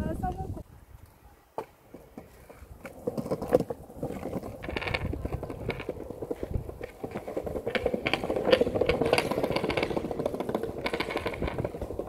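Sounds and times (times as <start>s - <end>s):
skateboard rolling over bricks: 1.5s - 12.0s.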